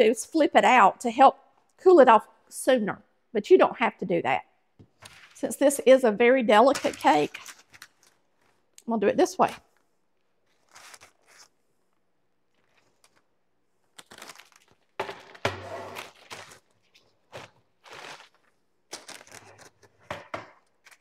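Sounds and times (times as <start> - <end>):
parchment paper rustling: 4.9 - 5.6, 6.6 - 21.0.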